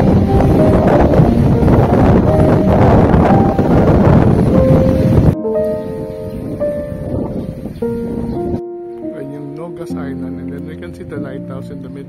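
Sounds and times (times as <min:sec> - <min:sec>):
wind buffeting microphone: 0:00.0 - 0:09.3
soft instrumental music: 0:00.0 - 0:12.0.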